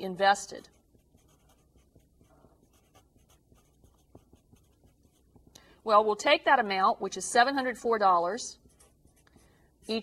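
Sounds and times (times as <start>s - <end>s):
marker scratching on paper: 0.0s - 5.5s, 8.6s - 10.0s.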